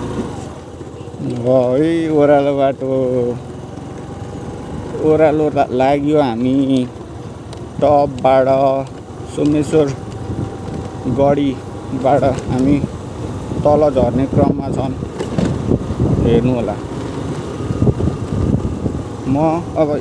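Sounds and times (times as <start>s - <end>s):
person talking: 7.8s - 10.0s, 11.0s - 13.0s, 13.6s - 15.0s, 16.2s - 16.9s, 19.2s - 20.0s.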